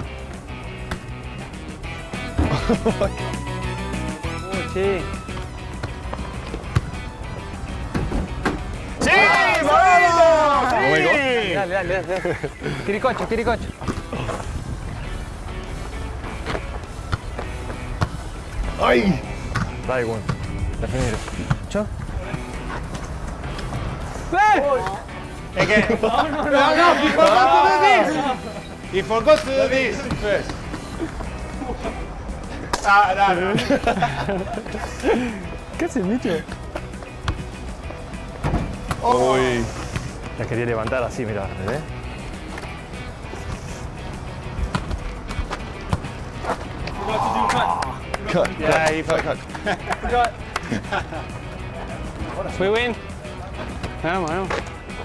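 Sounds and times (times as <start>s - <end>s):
background music: 0.0s - 55.0s
men shouting in celebration: 9.0s - 12.2s, 26.2s - 28.4s, 46.9s - 48.2s.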